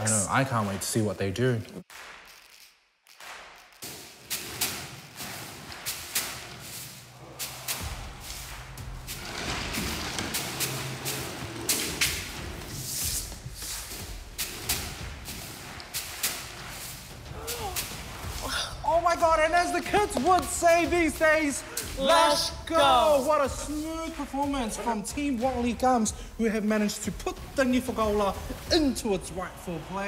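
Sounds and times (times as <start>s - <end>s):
broom sweeping wooden floor: 3.9s - 18.5s.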